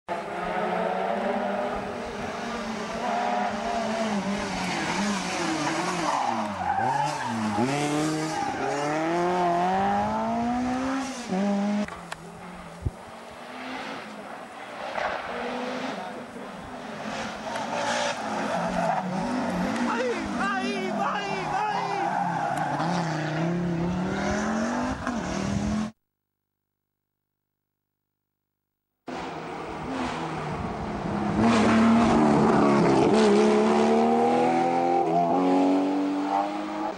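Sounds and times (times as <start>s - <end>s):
rally car engine revving: 0.1s - 12.6s, 13.4s - 26.0s, 29.1s - 36.9s.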